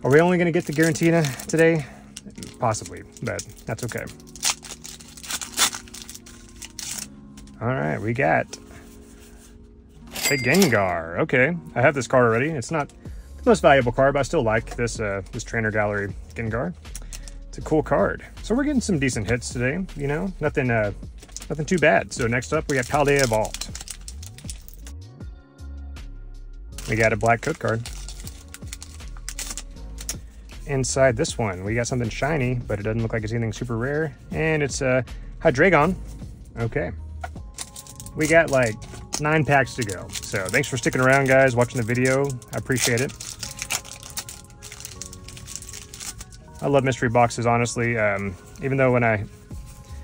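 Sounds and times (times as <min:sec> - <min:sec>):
foil wrapper crinkling and tearing: 0:00.0 - 0:07.5, 0:21.2 - 0:24.9, 0:26.8 - 0:30.2, 0:37.5 - 0:47.4
quiet background music: 0:00.0 - 0:50.0.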